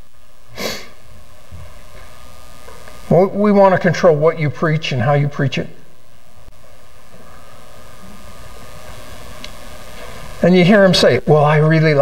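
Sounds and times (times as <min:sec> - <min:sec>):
room hiss: 0:00.0 - 0:12.0
sharp breath through nose: 0:00.5 - 0:01.0.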